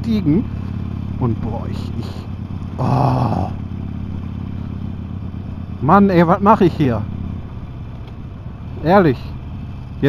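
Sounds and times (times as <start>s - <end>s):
motorcycle engine low rumble: 0.0s - 10.0s.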